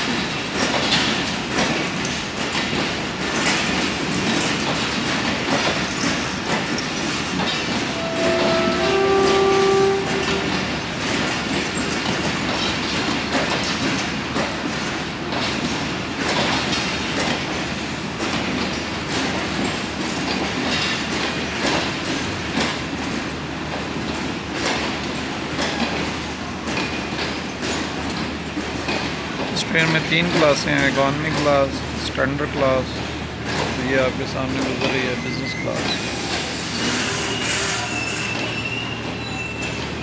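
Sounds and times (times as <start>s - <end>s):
train wheels clicking over rail joints: 0.0s - 8.1s, 9.0s - 40.0s
train rumble: 0.0s - 40.0s
train horn: 7.7s - 11.2s.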